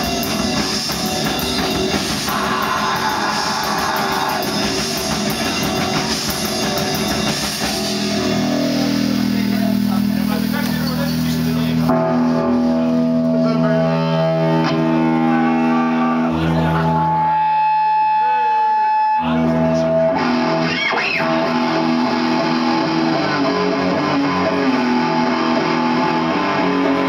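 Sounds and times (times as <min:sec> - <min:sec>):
metal band playing sustained chords: 0:00.0 - 0:27.0
high guitar note ringing: 0:04.2 - 0:27.0.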